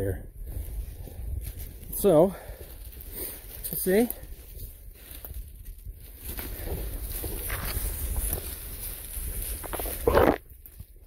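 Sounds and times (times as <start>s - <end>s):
brush rustling: 0.4s - 11.0s
footsteps on forest trail: 0.4s - 11.0s.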